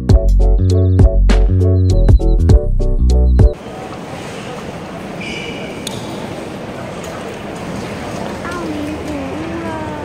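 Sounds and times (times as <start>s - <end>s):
background music: 0.0s - 3.6s.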